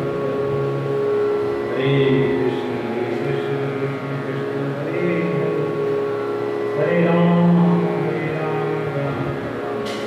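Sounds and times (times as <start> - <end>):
man chanting in long notes: 0.0 - 10.0
steady drone of sustained tones: 0.0 - 10.0.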